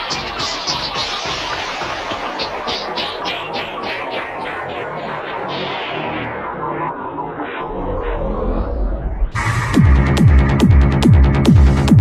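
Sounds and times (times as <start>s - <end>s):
psytrance dance music: 0.0s - 12.0s.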